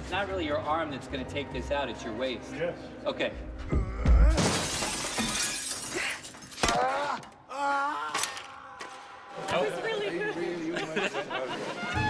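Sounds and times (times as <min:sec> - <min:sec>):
glass pane shattering: 0:04.3 - 0:07.0
glass shards showering down: 0:04.4 - 0:06.6.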